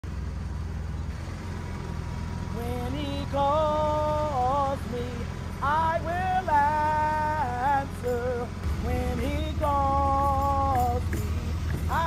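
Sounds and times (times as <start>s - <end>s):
road and traffic noise: 0.0s - 12.0s
small engine droning: 0.0s - 12.0s.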